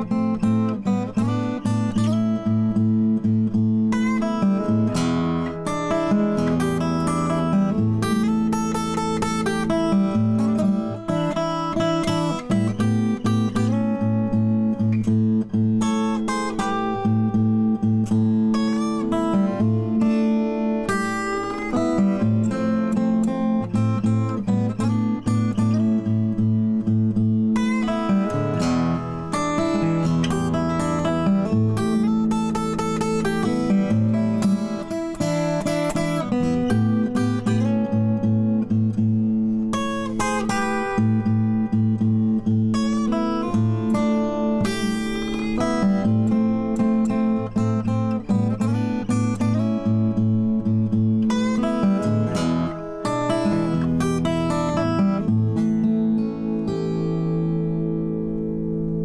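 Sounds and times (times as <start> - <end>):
fingerstyle blues acoustic guitar: 0.0 - 59.0.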